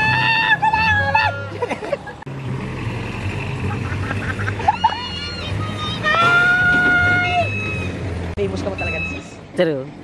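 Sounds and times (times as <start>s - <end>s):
dump truck engine hum: 0.0s - 10.0s.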